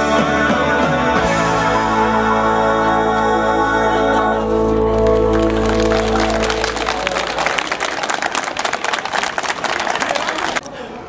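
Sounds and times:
folk dance music chords: 0.0 - 10.6
audience applauding: 4.7 - 10.7.

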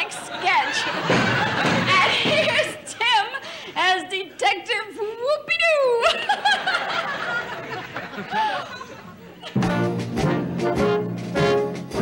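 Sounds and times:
studio audience laughter: 0.0 - 2.9, 6.0 - 9.6
woman laughing: 0.0 - 3.6, 5.9 - 9.6.

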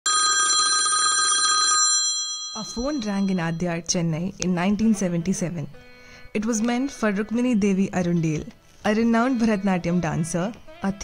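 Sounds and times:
telephone bell ringing: 0.1 - 3.7.

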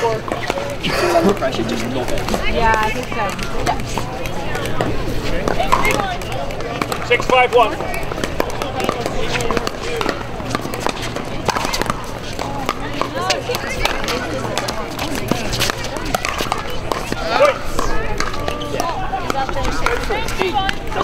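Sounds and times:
background chatter of voices: 0.0 - 21.0.

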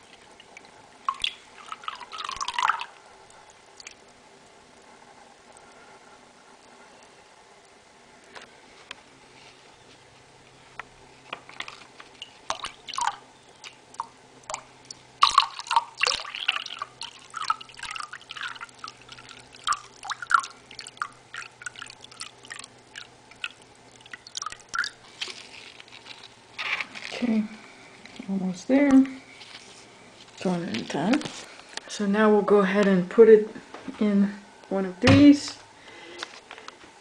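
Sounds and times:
liquid dripping into glass cup: 0.1 - 4.0, 12.2 - 25.1.

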